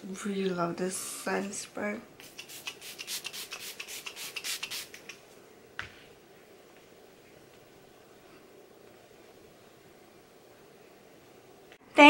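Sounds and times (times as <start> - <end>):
pump bottle spraying: 2.2 - 5.2.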